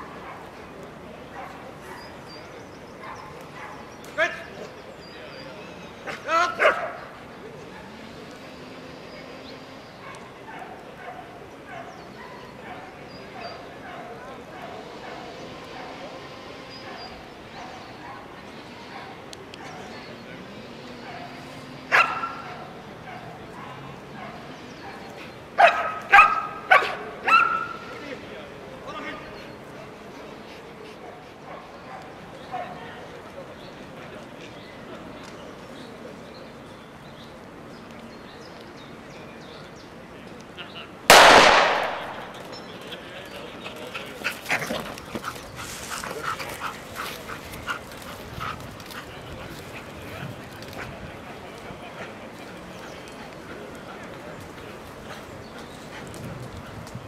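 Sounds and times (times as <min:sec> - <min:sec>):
dog barking: 0:03.0 - 0:03.8, 0:06.6 - 0:07.0, 0:10.0 - 0:16.0, 0:21.1 - 0:27.8
blank pistol shot: 0:41.1 - 0:42.4.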